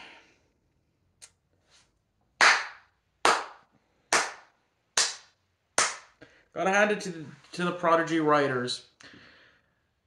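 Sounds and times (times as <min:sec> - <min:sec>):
person clapping slowly: 0:02.4 - 0:06.2.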